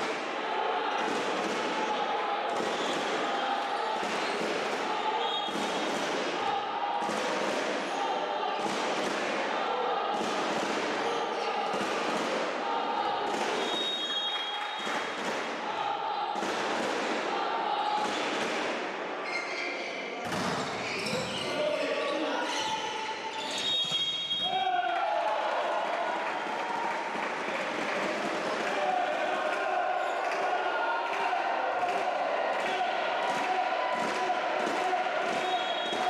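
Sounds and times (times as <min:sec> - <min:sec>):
volleyball struck and bouncing: 0:00.9 - 0:06.4, 0:07.0 - 0:08.0, 0:10.1 - 0:12.6
short high whistle: 0:13.6 - 0:14.9, 0:23.5 - 0:24.6.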